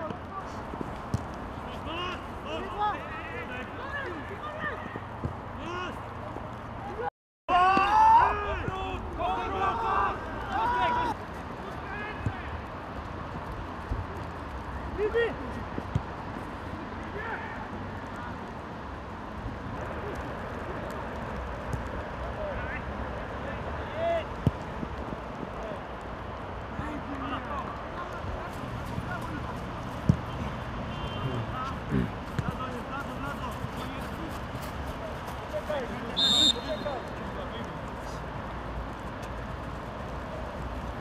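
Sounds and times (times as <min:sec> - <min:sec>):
players shouting: 0:01.6 - 0:06.2, 0:07.5 - 0:12.6, 0:27.0 - 0:38.2.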